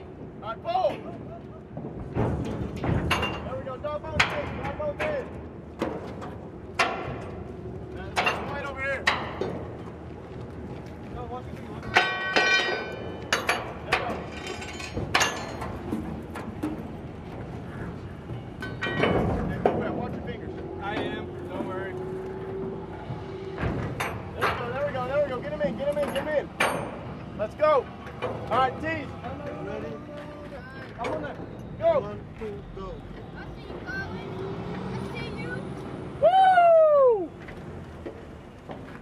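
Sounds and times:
metal clanks and knocks: 0:01.0 - 0:10.1, 0:11.7 - 0:29.1
voices calling: 0:17.5 - 0:37.6.

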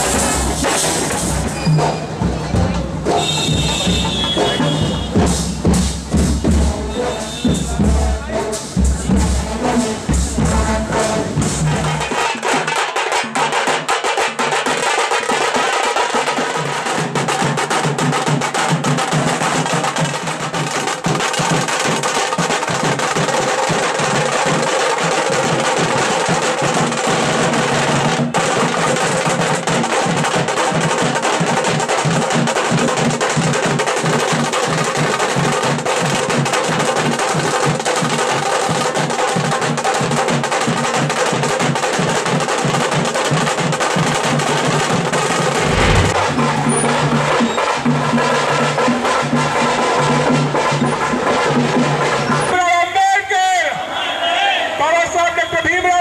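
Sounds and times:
drum band playing: 0:00.0 - 0:52.2.

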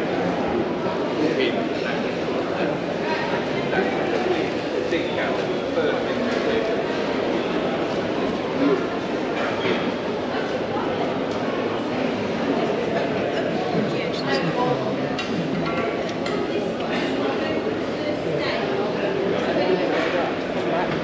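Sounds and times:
crowd chatter: 0:00.0 - 0:21.0.

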